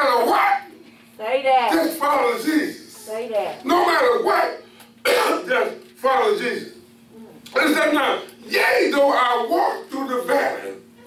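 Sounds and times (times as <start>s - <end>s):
man clearing his throat: 5.1s - 5.5s.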